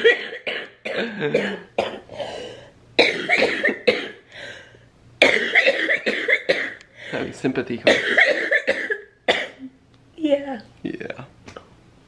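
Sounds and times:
woman coughing: 0.0 - 4.2, 5.2 - 6.8, 7.9 - 9.7.

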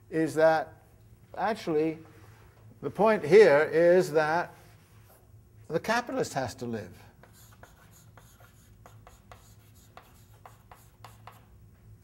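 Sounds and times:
chalk tapping and scraping on blackboard: 7.2 - 11.5.

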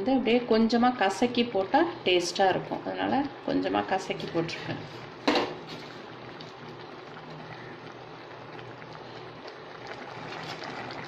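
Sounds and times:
food simmering in a pan: 0.3 - 11.0.

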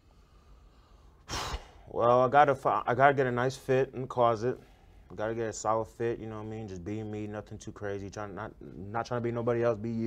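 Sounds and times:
person's short breath: 0.6 - 1.9.

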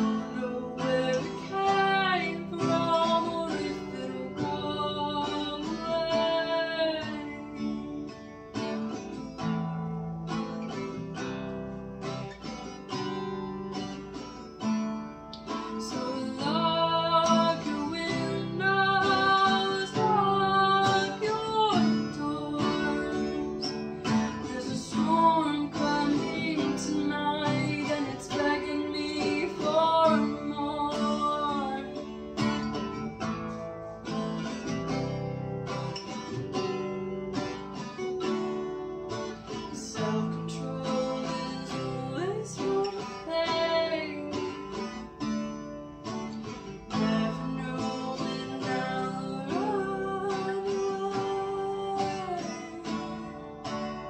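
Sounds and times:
woman singing: 0.0 - 8.4, 15.4 - 33.1, 39.3 - 45.6, 46.9 - 54.0
acoustic guitar strumming: 0.0 - 54.0.

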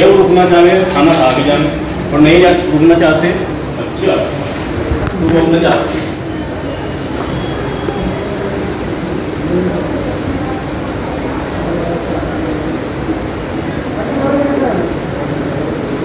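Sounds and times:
indistinct voices in a crowded room: 0.0 - 16.0.

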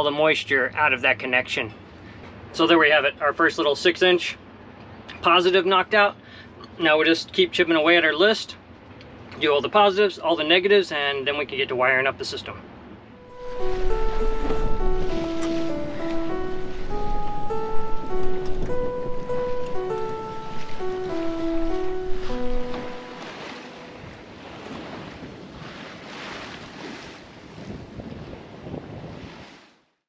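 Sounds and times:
simple single-note melody: 13.1 - 24.4
waves against a boat hull: 19.5 - 29.8.

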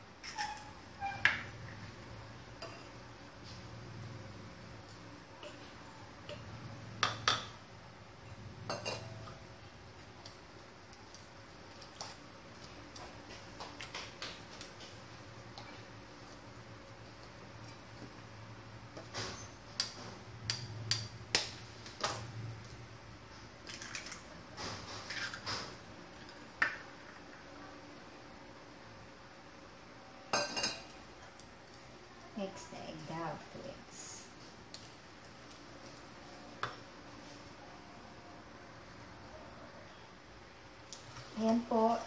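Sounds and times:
small steel bowl clinking: 8.6 - 9.4.

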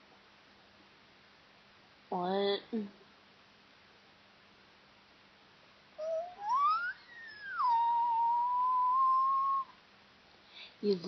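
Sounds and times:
whistle: 6.0 - 9.8.

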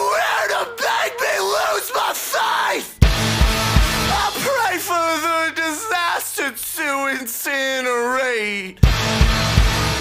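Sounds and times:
yelled vocal line: 0.0 - 10.0.

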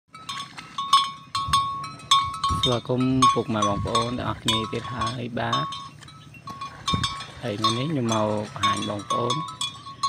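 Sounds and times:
neck bell clanking: 0.1 - 10.0.

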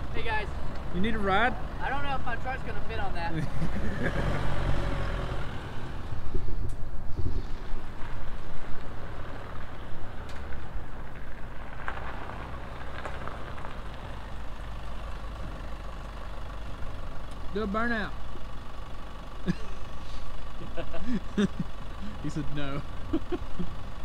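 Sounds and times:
pickup truck driving: 0.0 - 24.0
wind rumbling on microphone: 6.1 - 8.9.

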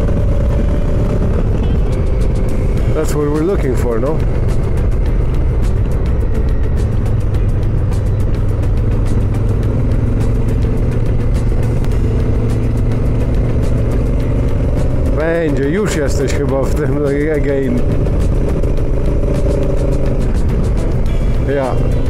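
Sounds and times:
motorcycle engine drone: 0.0 - 22.0.

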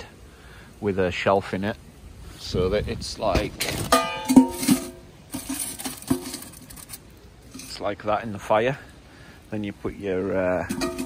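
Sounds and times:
metal pot clanking: 3.6 - 7.8, 10.6 - 11.0.

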